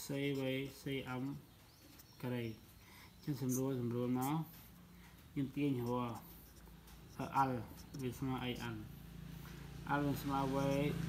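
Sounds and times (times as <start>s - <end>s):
man speaking: 3.2s - 4.6s, 5.4s - 6.4s, 7.1s - 8.9s, 9.9s - 11.0s
pen scratching on paper: 5.4s - 8.8s.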